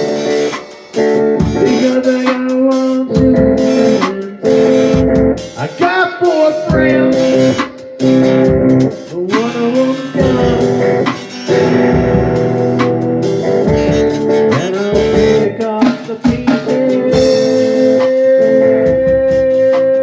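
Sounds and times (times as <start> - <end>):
lead guitar bending notes: 0.0 - 16.0
drum kit: 0.0 - 20.0
electric guitars: 0.0 - 20.0.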